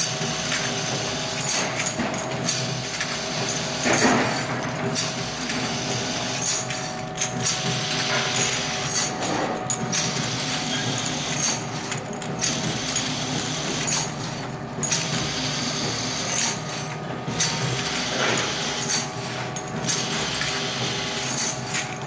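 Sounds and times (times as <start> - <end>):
filling machine running: 0.0 - 22.0
machine clatter: 0.0 - 22.0.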